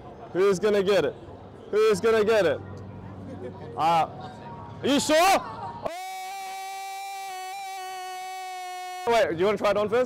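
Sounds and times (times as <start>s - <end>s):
synthesized steady tone: 5.9s - 9.2s.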